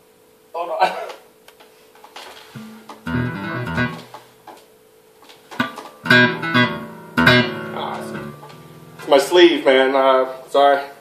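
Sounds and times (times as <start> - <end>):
electric bass guitar notes: 2.6 - 4.2, 5.6 - 10.5.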